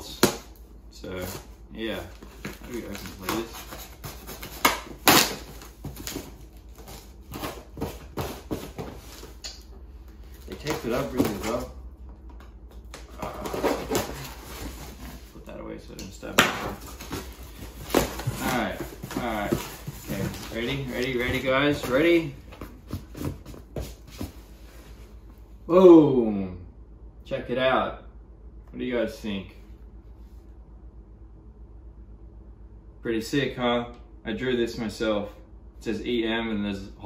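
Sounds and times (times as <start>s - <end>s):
cardboard and plastic rustling: 0.0s - 25.2s
packing tape ripping: 2.3s - 9.5s
cardboard box tearing open: 2.4s - 9.0s.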